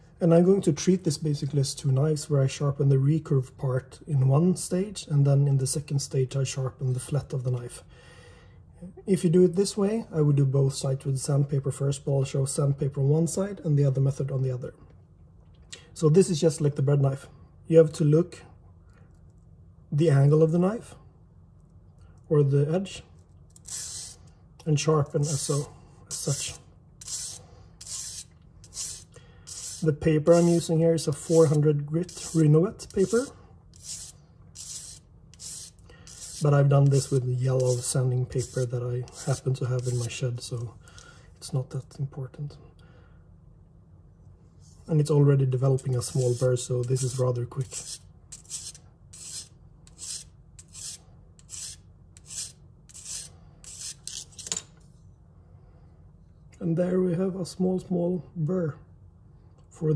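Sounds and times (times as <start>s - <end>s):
sandpaper rasping on knife edge: 23.6s - 24.2s, 25.2s - 40.3s, 45.8s - 54.4s.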